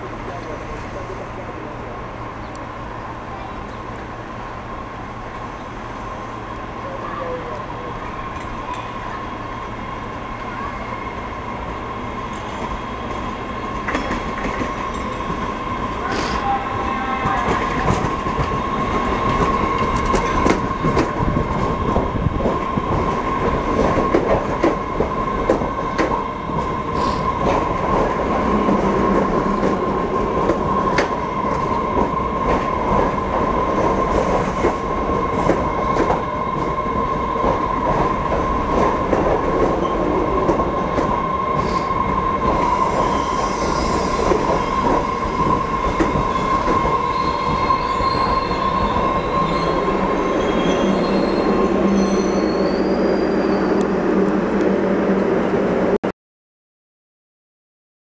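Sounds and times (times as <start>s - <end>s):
train wheels rumbling and clicking: 12.3s - 16.4s, 17.2s - 49.2s
high-pitched squeal: 42.6s - 53.8s.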